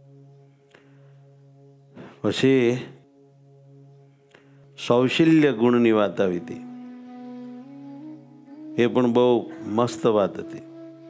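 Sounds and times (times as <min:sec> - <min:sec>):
man speaking: 0:04.8 - 0:06.6, 0:08.8 - 0:10.8.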